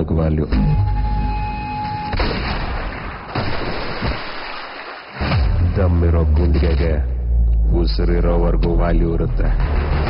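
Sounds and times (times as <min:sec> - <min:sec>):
low rumbling hits: 0:05.2 - 0:10.0.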